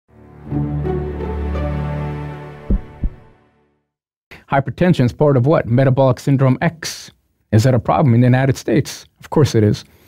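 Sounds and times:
short deep thumps: 0:02.7 - 0:03.3.

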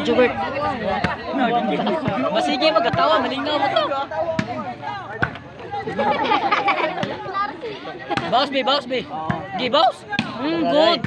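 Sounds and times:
crowd chatter and shouts: 0:00.0 - 0:11.0.

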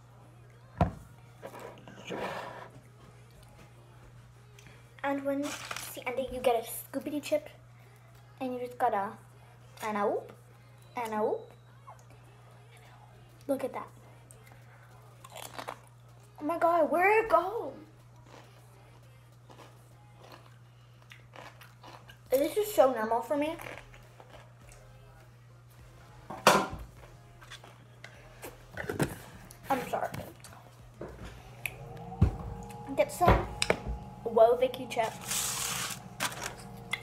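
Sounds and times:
crunchy chip chewing: 0:15.2 - 0:15.9, 0:18.2 - 0:18.6, 0:19.4 - 0:22.2.

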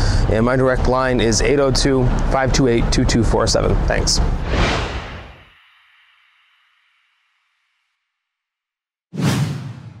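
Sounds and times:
whoosh sound effect: 0:04.4 - 0:05.5.

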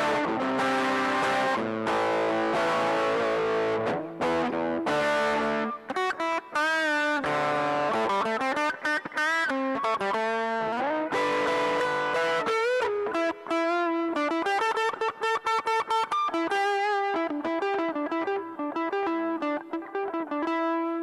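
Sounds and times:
overdriven electric guitar lead: 0:00.0 - 0:21.0.

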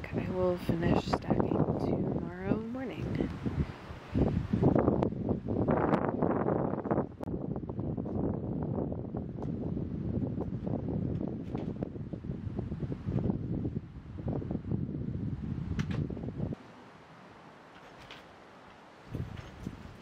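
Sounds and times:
wind gusting over microphone: 0:00.0 - 0:16.6, 0:19.0 - 0:20.0.

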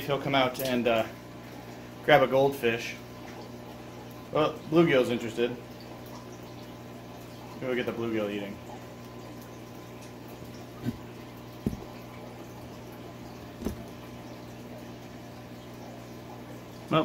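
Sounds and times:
low pump hum: 0:00.0 - 0:17.0
water flowing from pond filter: 0:00.0 - 0:17.0
faint short knocks: 0:10.8 - 0:11.9, 0:13.6 - 0:13.9.

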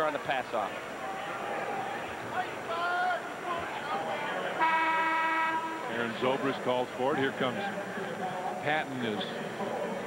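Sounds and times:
arena crowd noise: 0:00.0 - 0:10.0
buzzy horn: 0:04.6 - 0:05.9.

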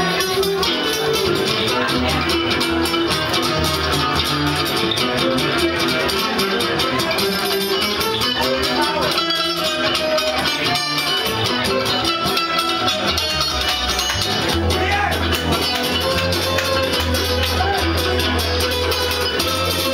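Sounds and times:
acoustic guitar playing: 0:00.0 - 0:19.9
second guitar plucking and strumming: 0:00.0 - 0:19.9
upright double bass: 0:00.0 - 0:19.9.

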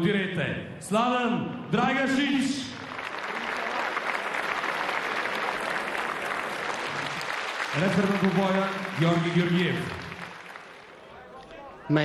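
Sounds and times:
audience applauding: 0:02.7 - 0:11.4.

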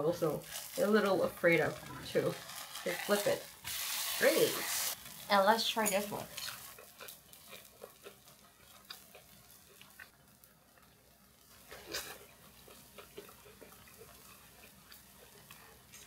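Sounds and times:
metal tongs tearing crisp food: 0:05.8 - 0:10.0
chewing crunches: 0:06.3 - 0:10.1, 0:11.6 - 0:16.0.

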